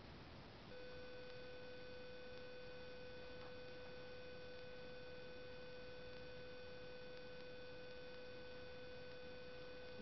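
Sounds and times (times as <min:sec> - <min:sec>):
steady electronic tone: 0:00.7 - 0:10.0.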